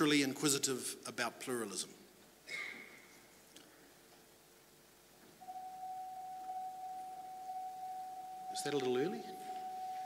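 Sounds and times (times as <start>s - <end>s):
steady electronic tone: 5.4s - 10.0s.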